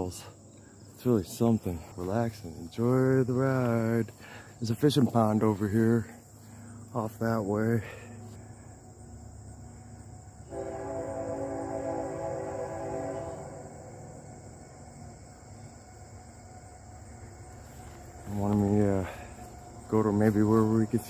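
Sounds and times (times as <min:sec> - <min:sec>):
distant locomotive horn: 0:08.0 - 0:20.9.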